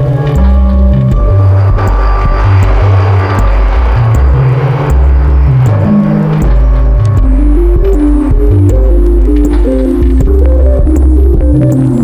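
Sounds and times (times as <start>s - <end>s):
electronic bass line: 0.0s - 12.0s.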